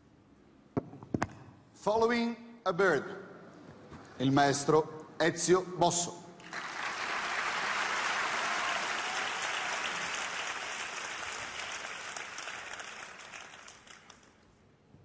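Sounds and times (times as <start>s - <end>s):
audience applauding: 6.4s - 14.4s.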